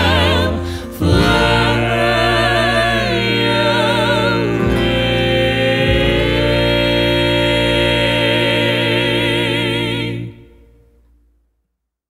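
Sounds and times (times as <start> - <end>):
steady bass: 0.0 - 11.0
vocal quartet singing in harmony: 0.0 - 11.0.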